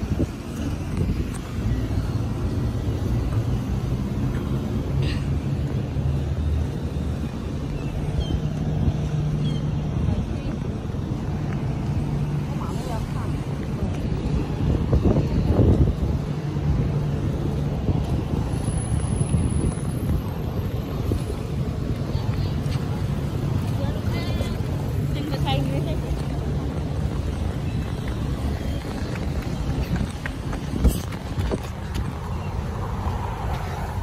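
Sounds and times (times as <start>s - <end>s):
cars passing: 0.0s - 34.0s.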